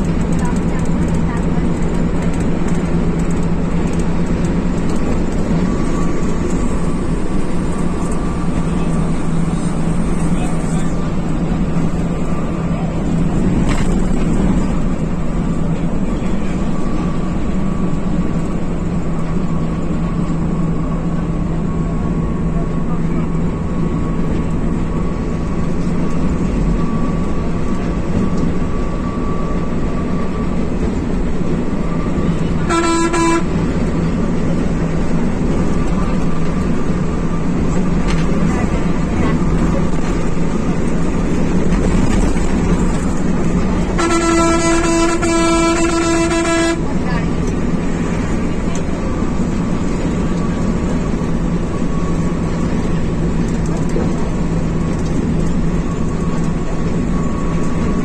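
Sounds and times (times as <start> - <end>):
diesel engine and tyre drone: 0.0 - 58.0
vehicle horn: 32.6 - 33.6, 43.9 - 47.0.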